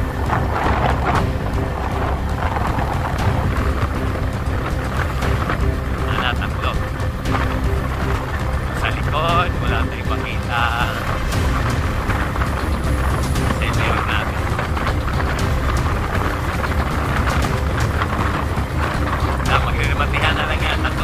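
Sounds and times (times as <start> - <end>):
motorcycle engine running: 0.0 - 21.0
wind rushing over microphone: 0.0 - 21.0.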